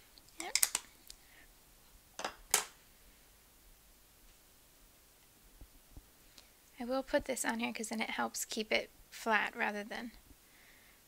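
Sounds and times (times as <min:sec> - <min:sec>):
plastic clicks: 0:00.4 - 0:00.9.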